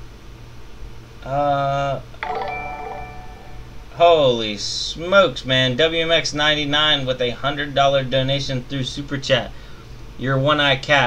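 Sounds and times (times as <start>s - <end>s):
speech: 1.2s - 2.0s, 4.0s - 9.6s, 10.2s - 11.0s
chime-like jingle: 2.2s - 4.1s.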